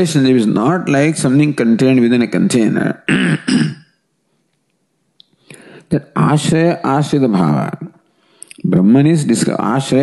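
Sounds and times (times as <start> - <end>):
man clearing his throat: 3.1 - 3.9.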